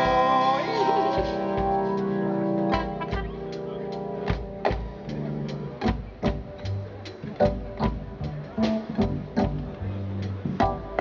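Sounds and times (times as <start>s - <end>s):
bass notes: 0.0s - 11.0s
reggae band instrumental: 0.0s - 11.0s.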